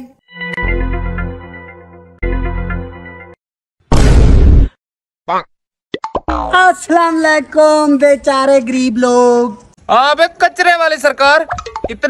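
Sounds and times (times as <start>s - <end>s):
man talking: 9.9s - 12.0s
cartoon plop sound effect: 11.5s - 11.9s.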